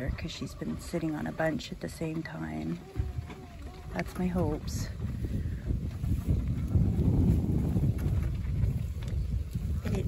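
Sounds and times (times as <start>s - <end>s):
low rumbling on microphone: 0.0s - 10.0s.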